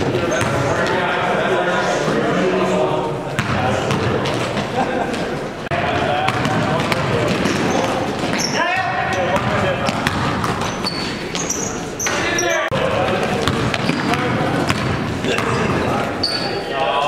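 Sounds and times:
basketball dribbling on gym floor: 6.2s - 11.0s, 12.8s - 15.6s.

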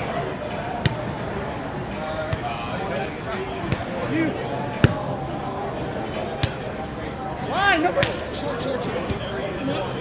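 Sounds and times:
players calling and talking: 0.0s - 10.0s
volleyball hit slap: 4.8s - 5.1s.

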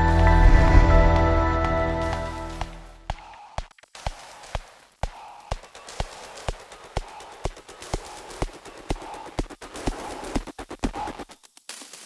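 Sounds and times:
sustained synth layer: 0.0s - 2.6s
sharp percussive clicks: 2.1s - 11.7s.

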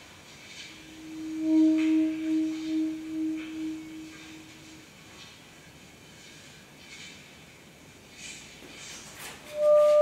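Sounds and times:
sustained musical note: 1.0s - 4.8s, 9.5s - 10.0s.

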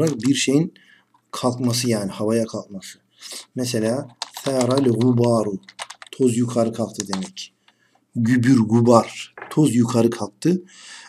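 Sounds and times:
typing on computer keyboard: 0.0s - 0.5s, 4.1s - 7.5s, 9.4s - 9.7s
person speaking: 0.0s - 10.6s.

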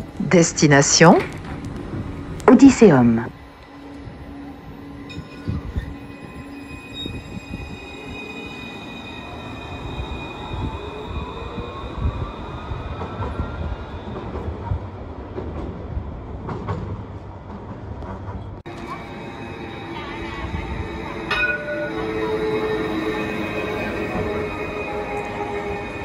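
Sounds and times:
tram motors whining: 3.3s - 15.0s, 18.7s - 26.0s
wheels rumbling on rails: 3.3s - 26.0s.

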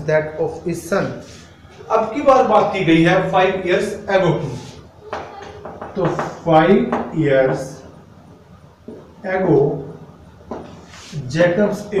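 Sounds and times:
chalk scratching on blackboard: 10.8s - 11.3s.

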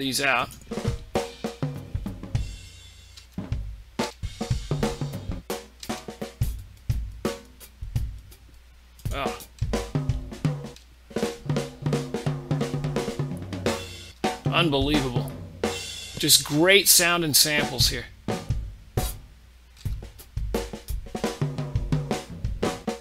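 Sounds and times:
drum fills: 0.0s - 23.0s.

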